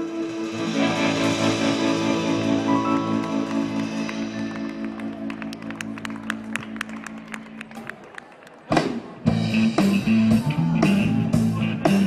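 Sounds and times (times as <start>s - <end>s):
scattered hand claps: 3.2s - 9.0s.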